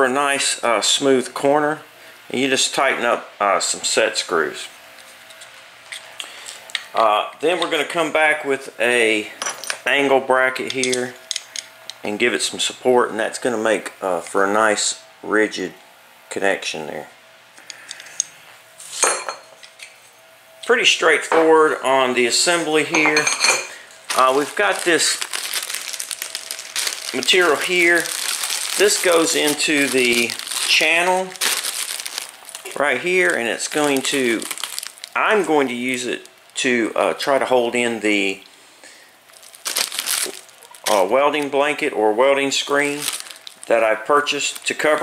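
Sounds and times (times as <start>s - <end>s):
plastic bag crinkling: 24.1s - 37.8s, 39.3s - 45.0s.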